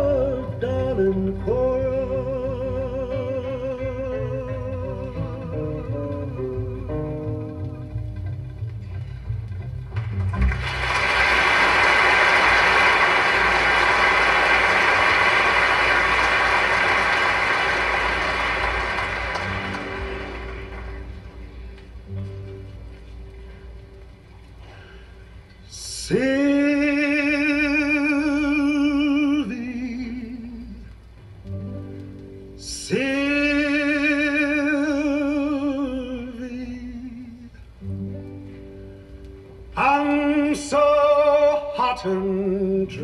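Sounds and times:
guitar: 0:00.0 - 0:43.0
audience applause: 0:10.2 - 0:21.6.

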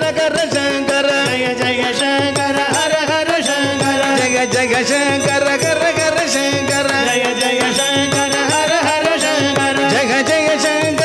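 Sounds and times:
harmonium: 0:00.0 - 0:11.0
men singing devotional song: 0:00.0 - 0:11.0.

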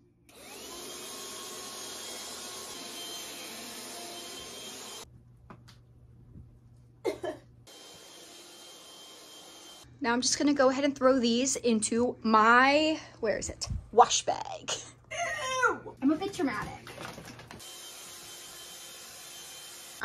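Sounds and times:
handheld vacuum motor whining: 0:00.3 - 0:05.1, 0:07.7 - 0:09.8, 0:17.4 - 0:20.0.

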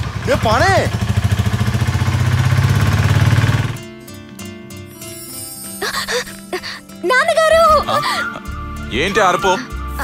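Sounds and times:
rickshaw engine running: 0:00.0 - 0:05.1
background music: 0:03.3 - 0:10.0.

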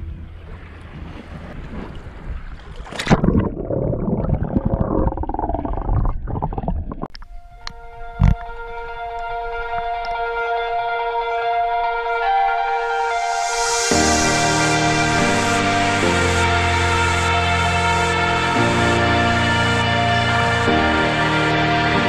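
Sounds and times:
churning bubbling water: 0:00.5 - 0:07.2
synth chord music: 0:07.8 - 0:22.0
sharp hit: 0:12.9 - 0:16.3.

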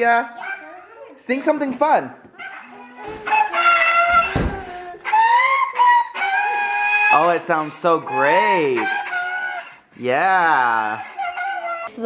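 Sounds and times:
dull thump: 0:04.1 - 0:04.7
girl singing high notes: 0:11.3 - 0:12.0.

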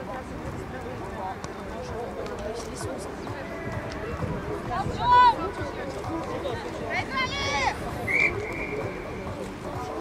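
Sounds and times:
faint voices: 0:00.0 - 0:10.0
referee's whistle blast: 0:08.1 - 0:09.0.

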